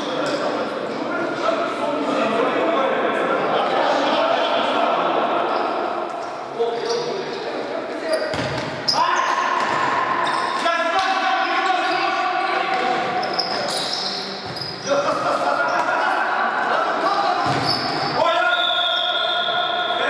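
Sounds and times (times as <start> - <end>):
ball kicked and bouncing: 8.3 - 8.8
players shouting in a hall: 8.8 - 13.4, 14.9 - 20.0.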